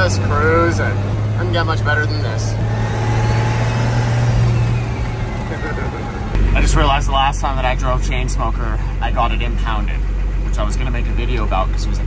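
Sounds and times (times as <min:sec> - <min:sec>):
low engine drone: 0:00.0 - 0:12.0
road and wind noise: 0:00.0 - 0:12.0.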